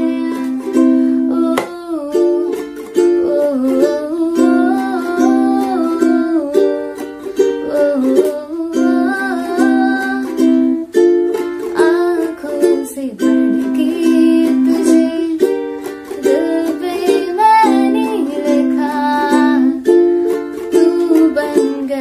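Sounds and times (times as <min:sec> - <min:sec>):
woman singing: 0:00.0 - 0:10.9, 0:11.6 - 0:22.0
ukulele strumming: 0:00.0 - 0:22.0.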